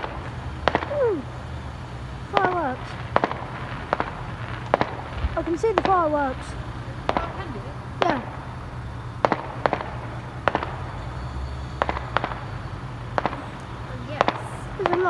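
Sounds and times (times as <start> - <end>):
distant fireworks bangs: 0.0 - 15.0.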